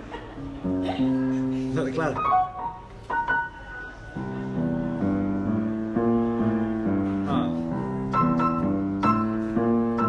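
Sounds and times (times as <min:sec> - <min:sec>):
grand piano chords: 0:00.0 - 0:10.0.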